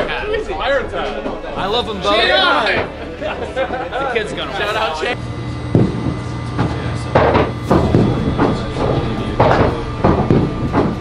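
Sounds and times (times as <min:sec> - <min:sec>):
balls rolling with low rumble: 0:00.0 - 0:11.0
balls knocking and clunking: 0:05.7 - 0:11.0.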